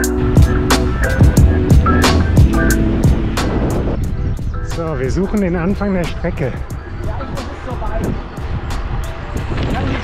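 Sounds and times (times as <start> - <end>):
background music: 0.0 - 10.0
wind rumbling on microphone: 0.0 - 10.0.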